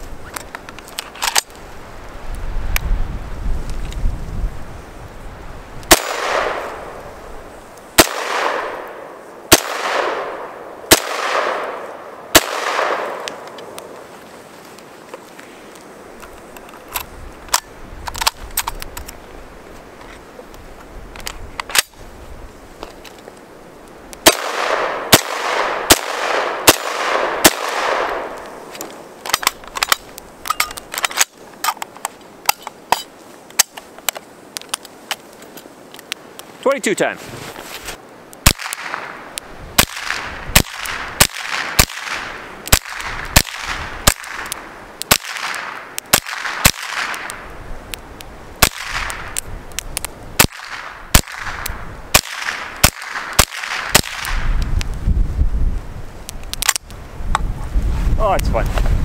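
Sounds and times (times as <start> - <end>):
rifle shots with long echo: 5.9 - 14.0, 24.2 - 28.7, 38.4 - 47.5, 48.6 - 49.4, 50.4 - 54.5
sharp clicks: 56.2 - 57.5.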